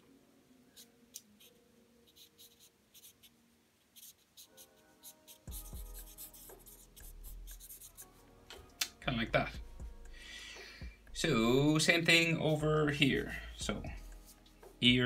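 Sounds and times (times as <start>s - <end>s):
faint background music: 0.0s - 15.0s
marker scratching on paper: 0.8s - 3.3s, 4.0s - 8.1s.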